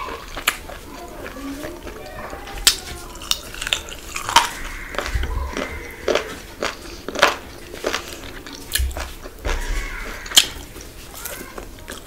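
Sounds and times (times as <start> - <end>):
person chewing wet mouth noises: 0.0 - 12.0.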